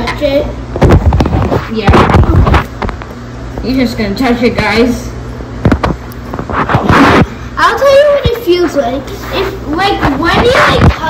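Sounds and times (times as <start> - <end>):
rustling scrape: 6.3 - 7.4, 8.4 - 11.0.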